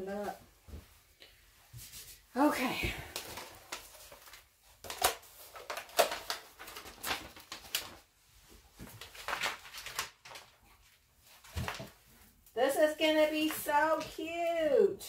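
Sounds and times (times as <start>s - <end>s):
wrapping paper rustling: 2.1s - 14.3s.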